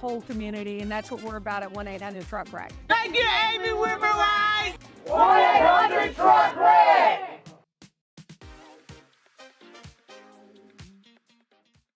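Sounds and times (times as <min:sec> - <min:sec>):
group shouting in unison: 0:03.0 - 0:07.4.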